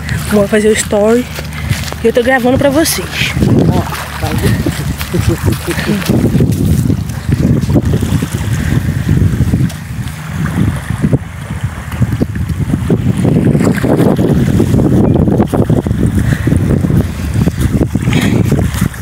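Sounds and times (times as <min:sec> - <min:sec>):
wind gusting across microphone: 0:00.0 - 0:19.0.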